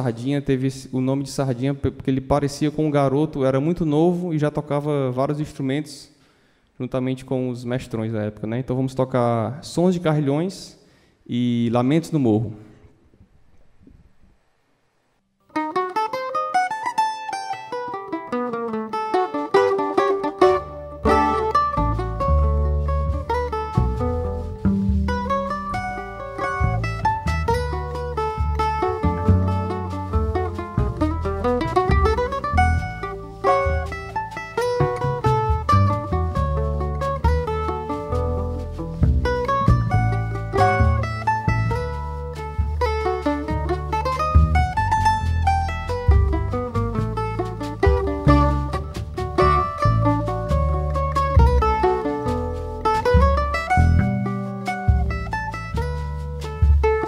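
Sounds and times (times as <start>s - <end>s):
plucked mandolin melody: 15.5s - 57.0s
upright double bass: 15.6s - 57.0s
drum kit: 19.3s - 57.0s.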